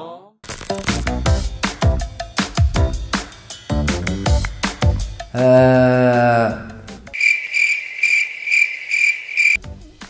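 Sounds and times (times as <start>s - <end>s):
high-pitched cricket chirps: 7.1s - 9.6s.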